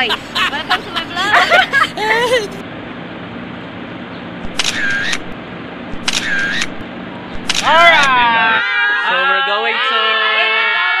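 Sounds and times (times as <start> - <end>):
camera shutter click: 4.5 - 5.3, 6.0 - 6.8, 7.4 - 8.1.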